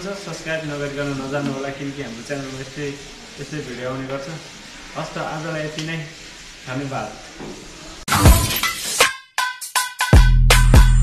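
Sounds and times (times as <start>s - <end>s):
glass shattering: 8.1s - 9.1s
chopped electronic music: 8.1s - 11.0s.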